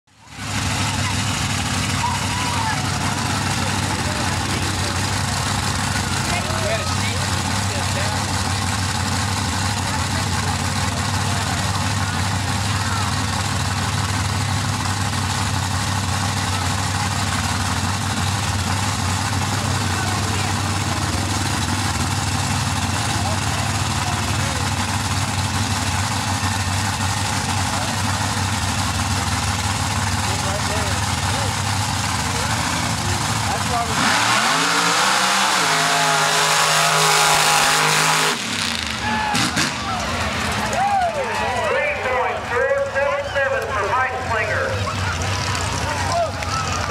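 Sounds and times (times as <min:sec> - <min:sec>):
spectators talking: 0:00.1 - 0:46.9
truck engine idling: 0:00.1 - 0:46.9.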